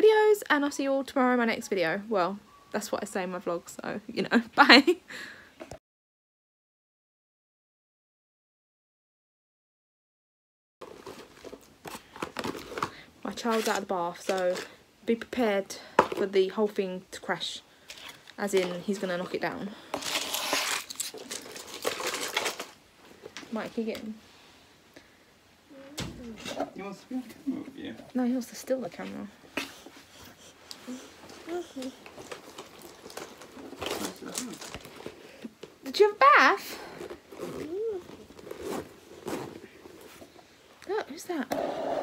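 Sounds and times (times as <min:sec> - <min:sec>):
plastic packaging rustling: 0:10.8 - 0:14.8, 0:17.8 - 0:24.1, 0:30.8 - 0:35.8, 0:36.7 - 0:40.4.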